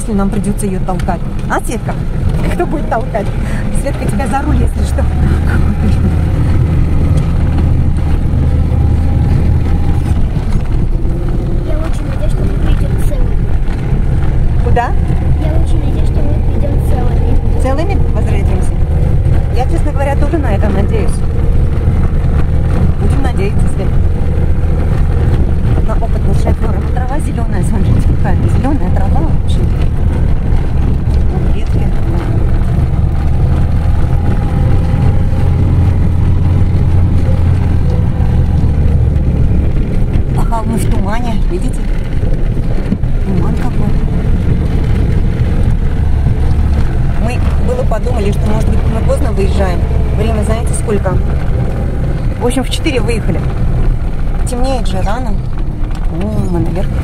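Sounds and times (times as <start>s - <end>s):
car engine droning: 0.0s - 57.0s.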